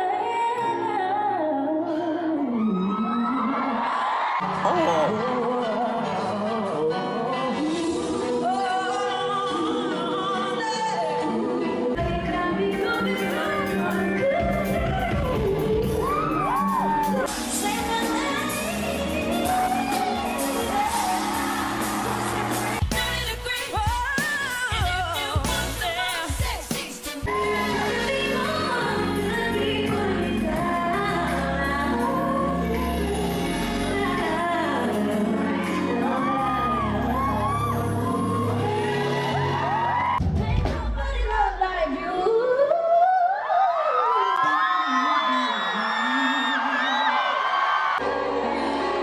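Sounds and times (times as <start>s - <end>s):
woman singing vocal run: 0.0s - 47.2s
audience whooping and cheering: 2.4s - 5.5s, 15.1s - 23.2s, 35.3s - 40.6s, 42.7s - 49.0s
band music with drums: 12.0s - 28.0s, 40.1s - 41.4s.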